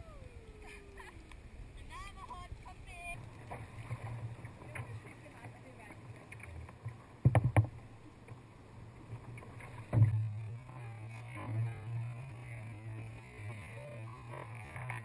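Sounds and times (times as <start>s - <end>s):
paddle splashes: 0.0s - 15.0s
water sloshing against kayak hull: 0.4s - 15.0s.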